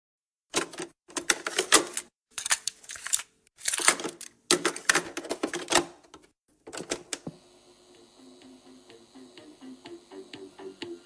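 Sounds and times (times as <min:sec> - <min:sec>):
steady low tones: 0:07.8 - 0:11.0.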